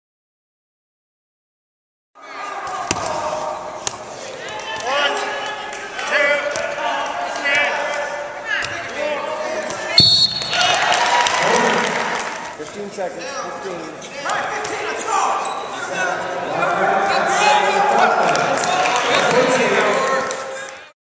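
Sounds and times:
referee whistle blast: 10.0 - 10.8.

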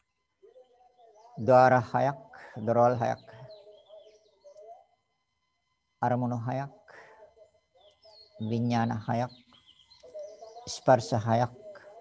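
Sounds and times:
man speaking: 0.0 - 4.9, 6.0 - 9.4, 10.1 - 12.0
faint bird chirps: 0.0 - 12.0.

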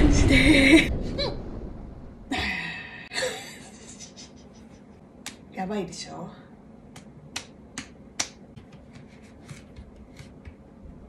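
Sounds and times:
hands slapping bare belly: 6.9 - 10.6.

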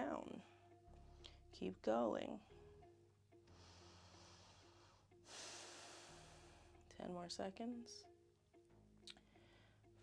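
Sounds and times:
soft background music: 0.0 - 10.0
person breathing: 3.5 - 6.8, 9.2 - 10.0.

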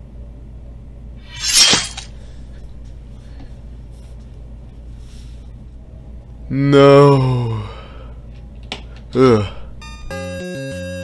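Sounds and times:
hissy slash sound effect: 1.3 - 2.1.

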